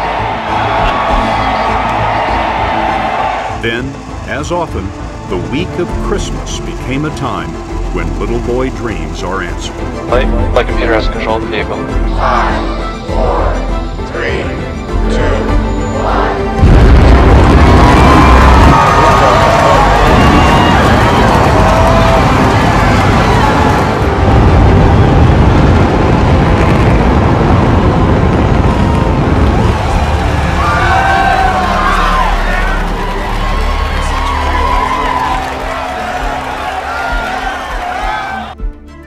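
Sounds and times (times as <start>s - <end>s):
crowd cheering and whooping: 0.0s - 4.5s, 15.4s - 38.6s
rocket engine roar: 0.0s - 38.6s.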